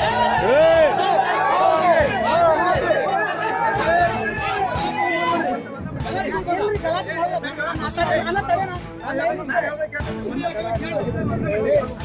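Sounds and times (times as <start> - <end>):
men arguing: 0.0 - 12.0.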